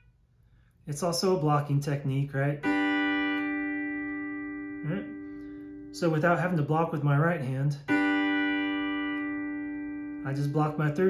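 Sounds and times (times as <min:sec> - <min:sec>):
pedal steel guitar chord ringing: 0:02.6 - 0:07.0, 0:07.8 - 0:11.0.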